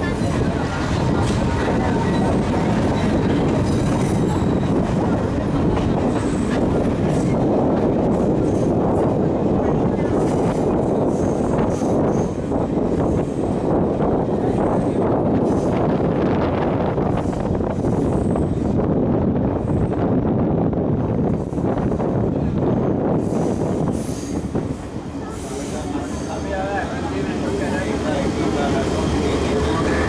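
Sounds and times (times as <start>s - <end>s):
voices: 0.0s - 8.0s, 24.8s - 30.0s
train wheels and engine rumbling: 0.0s - 30.0s.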